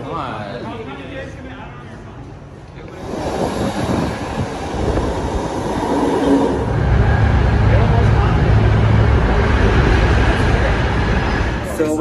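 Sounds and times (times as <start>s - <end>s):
train pulling into station: 1.9s - 12.0s
low rumble inside moving train: 3.0s - 12.0s.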